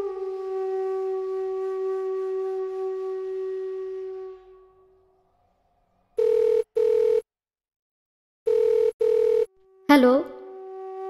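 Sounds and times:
telephone ringing tone: 6.2s - 7.3s, 8.5s - 9.6s.

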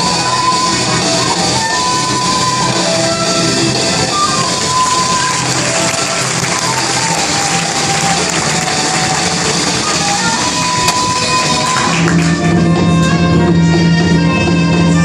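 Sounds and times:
instrumental music: 0.0s - 15.0s.

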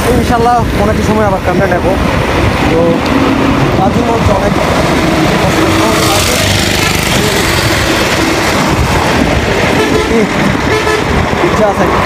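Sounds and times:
road traffic: 0.0s - 12.0s
wind rushing over microphone: 0.0s - 12.0s
bus passing close by: 1.8s - 12.0s
vehicle horn toot: 9.8s - 11.2s.

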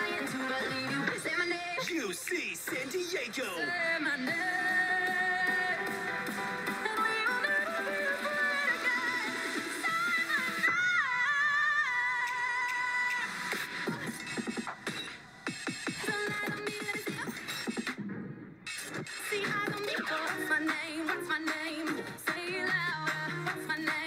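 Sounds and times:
electronic pop dance music: 0.0s - 24.0s.

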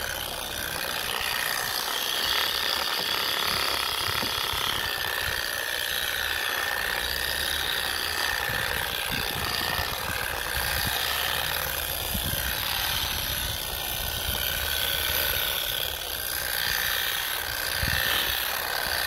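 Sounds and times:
orbital polisher whine: 0.0s - 19.0s.

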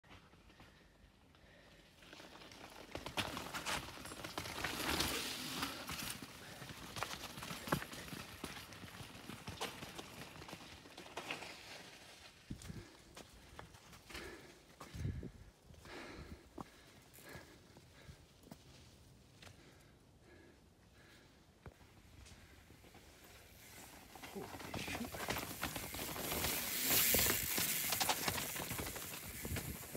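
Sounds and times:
bike rattling: 2.0s - 12.9s, 22.8s - 29.9s
tyres crunching over rocks: 23.8s - 29.9s.

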